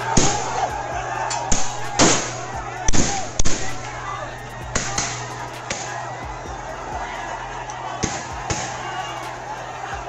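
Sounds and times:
sharp bangs: 0.0 - 7.1, 7.7 - 9.5
crowd shouting: 0.0 - 10.0.

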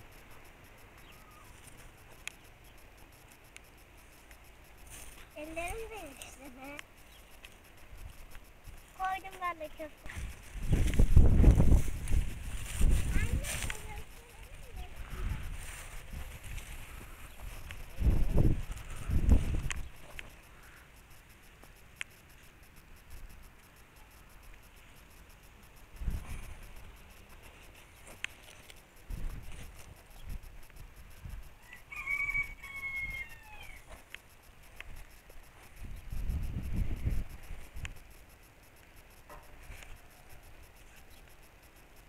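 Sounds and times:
rooster crowing: 31.6 - 33.9.

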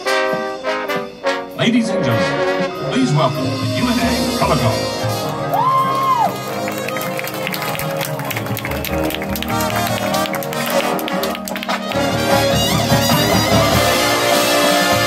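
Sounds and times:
marching band playing: 0.0 - 15.0
sharp percussion strikes: 11.8 - 15.0.

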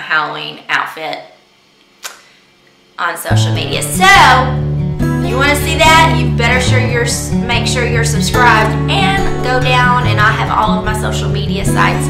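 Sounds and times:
woman speaking: 0.0 - 1.4, 3.0 - 4.6, 5.2 - 12.0
sharp click: 2.0 - 2.3.

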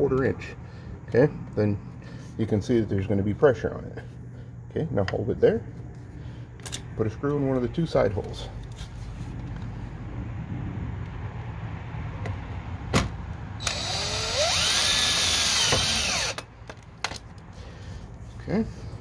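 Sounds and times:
cordless drill driving a screw: 13.6 - 16.5.

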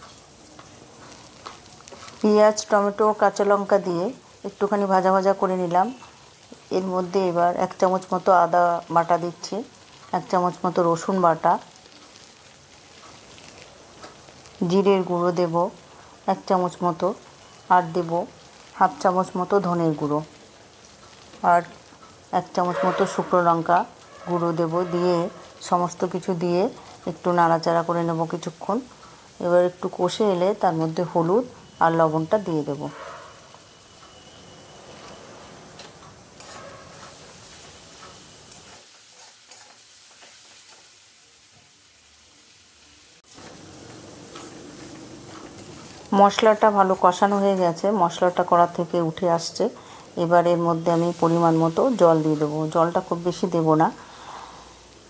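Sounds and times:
frying sizzle: 0.0 - 55.0
woman speaking: 2.2 - 6.0, 6.7 - 11.6, 14.6 - 20.3, 21.4 - 21.7, 22.4 - 33.0, 46.1 - 54.0
metal spatula scraping pan: 22.6 - 25.5, 32.9 - 40.9.

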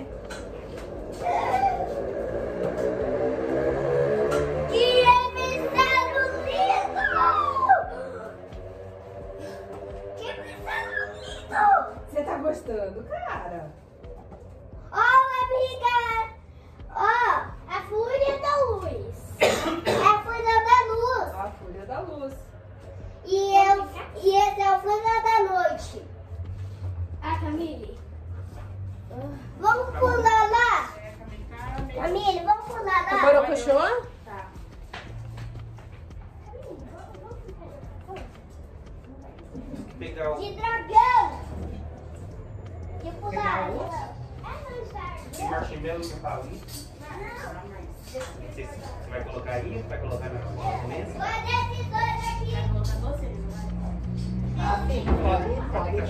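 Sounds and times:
child talking: 4.7 - 8.4, 10.2 - 12.2, 14.8 - 21.6, 23.2 - 26.1, 29.1 - 34.6, 36.4 - 41.8, 43.0 - 45.6, 46.9 - 49.0, 50.5 - 54.0
child calling out: 5.8 - 8.3, 10.2 - 12.1
person coughing: 19.3 - 20.2.

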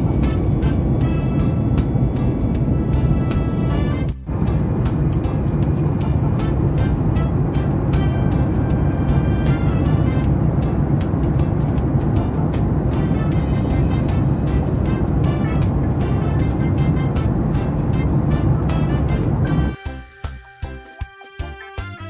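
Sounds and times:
jet airliner cabin roar: 0.0 - 19.8
background music with steady beat: 0.0 - 22.0.

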